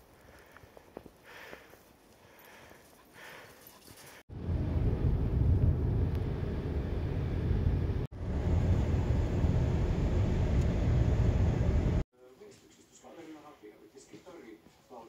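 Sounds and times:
road and tyre noise in car: 4.4 - 12.0.

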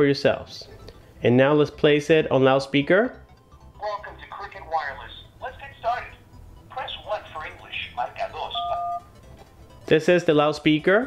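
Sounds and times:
recorded voice through phone speaker: 3.8 - 8.8
keypad tone: 8.5 - 9.2.

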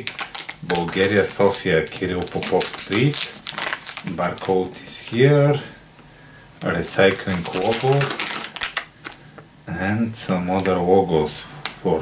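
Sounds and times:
plastic packet crinkling: 0.0 - 4.9, 6.6 - 9.3.

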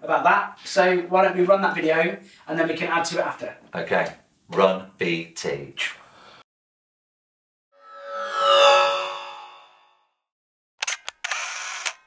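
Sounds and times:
camera shutter clicks: 10.8 - 12.0.

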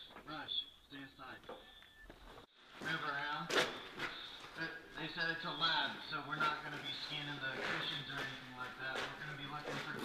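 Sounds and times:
man talking: 2.8 - 10.0.

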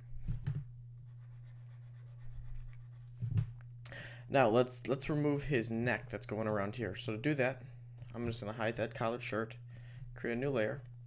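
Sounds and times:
steady low hum: 0.0 - 11.0
faint scratching and rubbing: 1.0 - 3.4.

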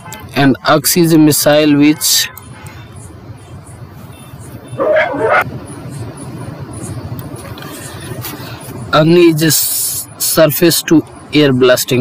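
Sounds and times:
dog barking: 4.8 - 5.5.

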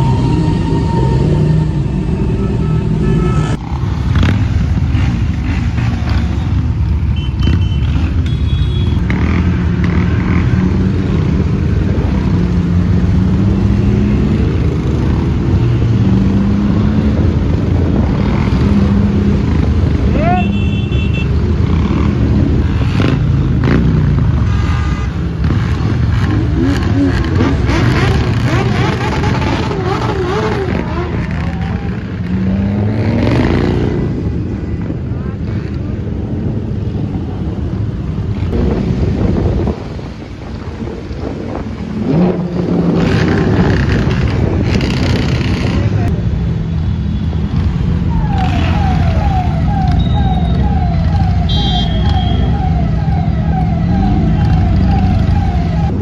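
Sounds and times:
motorcycle engines revving: 0.0 - 56.0
short beeps: 51.5 - 52.6.

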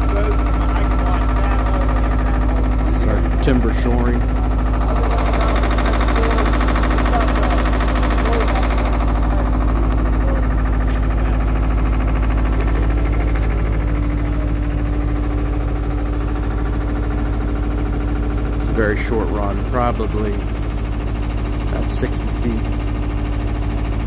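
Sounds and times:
diesel engine droning: 0.0 - 24.0.

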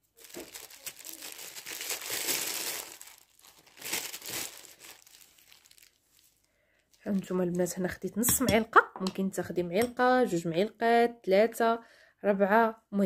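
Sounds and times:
packet crinkling: 0.0 - 7.8.

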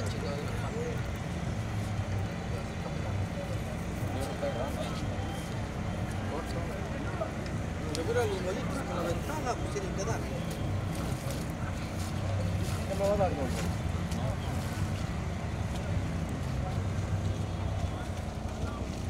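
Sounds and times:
people talking: 0.0 - 19.0
tractor engine running: 0.0 - 19.0.

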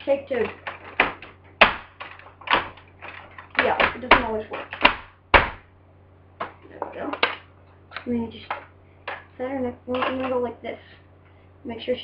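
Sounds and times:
plastic toy clacks and knocks: 6.4 - 7.4.

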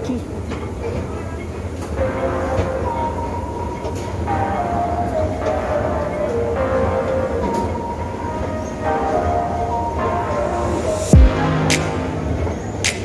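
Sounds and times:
background music: 1.8 - 13.0.

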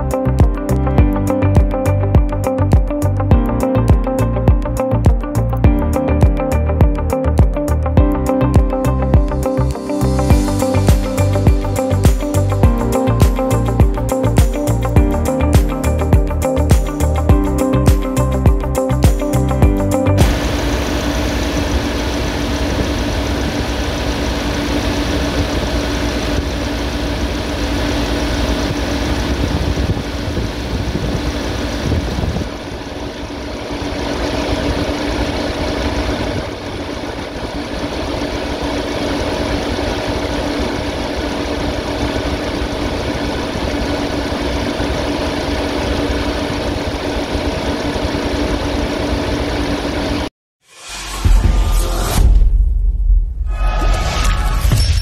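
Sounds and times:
engine idling: 8.8 - 50.3.

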